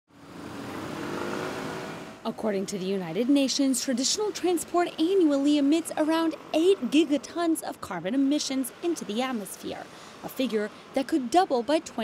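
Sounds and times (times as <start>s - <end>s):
scooters and cars driving: 0.1s - 12.0s.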